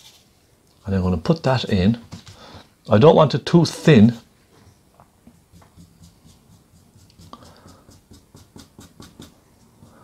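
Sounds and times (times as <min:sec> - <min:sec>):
brush bristles scratching canvas: 0:05.4 - 0:10.0.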